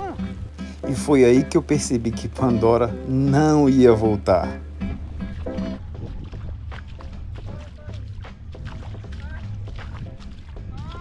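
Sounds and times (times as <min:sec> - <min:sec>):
wind rumbling on microphone: 0:04.7 - 0:11.0
splashy clicks in water: 0:06.3 - 0:11.0.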